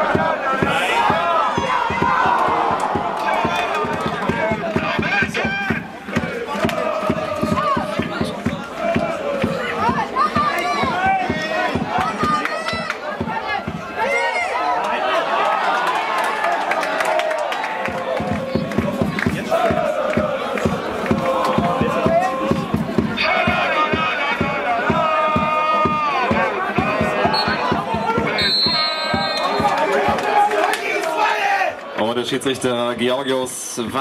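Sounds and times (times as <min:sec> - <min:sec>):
crowd shouting: 0:00.0 - 0:32.0.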